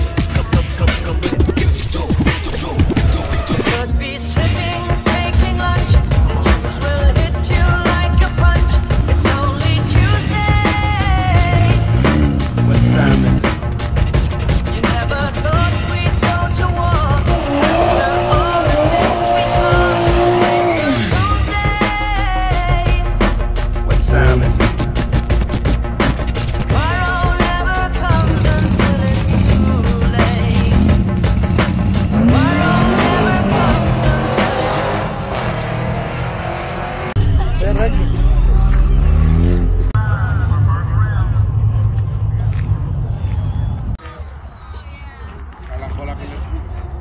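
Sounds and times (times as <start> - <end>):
background music: 0.0 - 41.8
car engine revving: 4.6 - 43.5.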